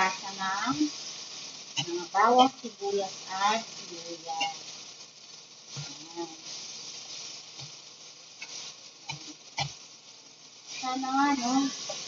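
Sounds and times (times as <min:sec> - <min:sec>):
beans sizzling in a pot: 0:00.0 - 0:12.0.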